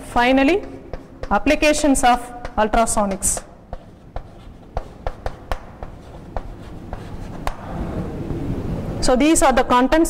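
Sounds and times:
chalk tapping and scratching: 0.2s - 7.7s.

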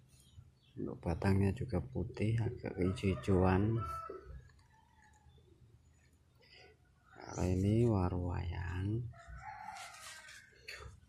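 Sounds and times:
rooster crowing faintly: 9.1s - 11.0s.

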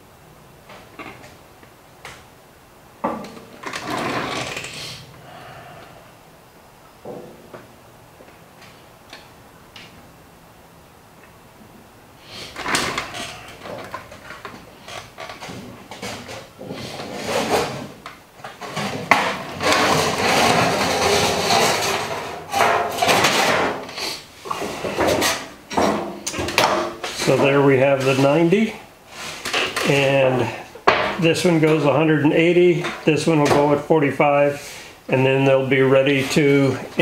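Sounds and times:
sheet metal rattling and scraping: 12.6s - 23.9s
sheet metal clanking: 18.7s - 23.9s.

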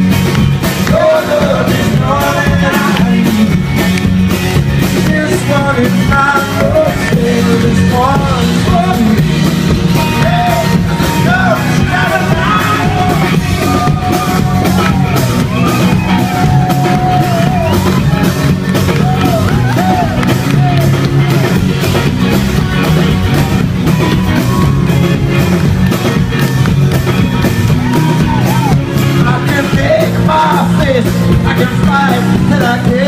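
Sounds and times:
electric guitar: 0.0s - 33.0s
steady drum beat: 0.0s - 33.0s
people singing: 0.8s - 3.7s, 10.0s - 14.5s, 29.2s - 33.0s.

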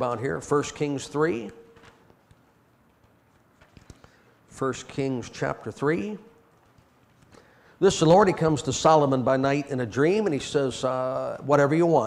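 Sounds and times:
pages being turned: 1.7s - 4.3s.

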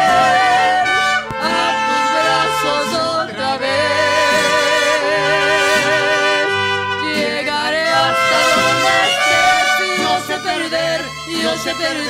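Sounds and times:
man and woman singing: 0.0s - 12.0s
mariachi band playing: 0.0s - 12.0s
trumpets playing: 0.0s - 12.0s.

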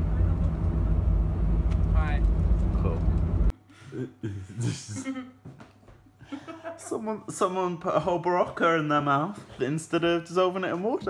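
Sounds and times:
coach engine rumble: 0.0s - 3.5s
road noise: 0.0s - 3.5s.

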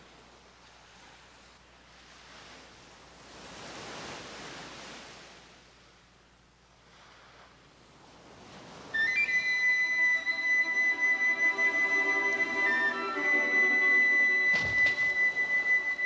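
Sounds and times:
surf washing: 0.0s - 16.0s
flute holding high note: 9.0s - 16.0s.

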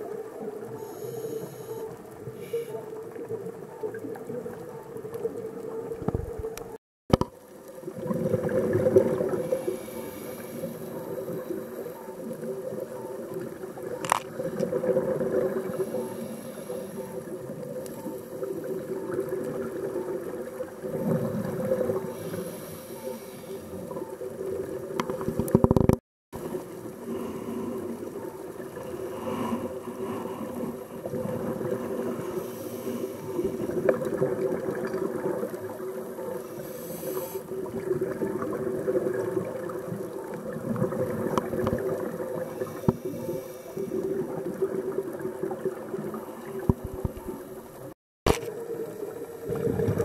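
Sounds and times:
underwater low drone: 0.0s - 6.7s, 7.5s - 25.1s.

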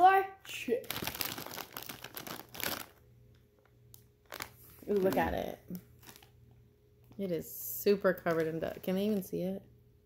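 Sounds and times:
plastic chip bag crinkling: 0.7s - 6.4s, 8.1s - 9.4s.

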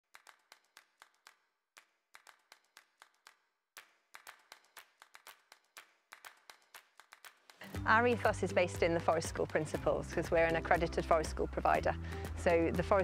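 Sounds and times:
percussive clicks and taps: 0.1s - 7.7s.

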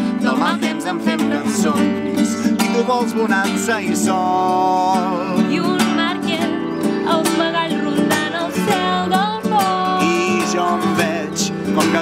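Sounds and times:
acoustic guitar strumming: 0.0s - 12.0s
man singing long held notes: 9.8s - 12.0s.

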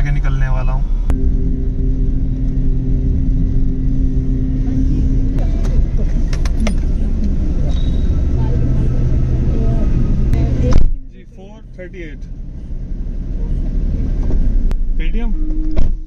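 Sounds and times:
car engine drone from cabin: 0.0s - 16.0s.

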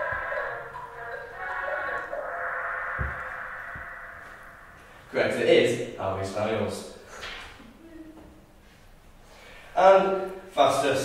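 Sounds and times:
muffled loudspeaker audio: 0.0s - 4.0s
low thumps: 0.0s - 5.1s.

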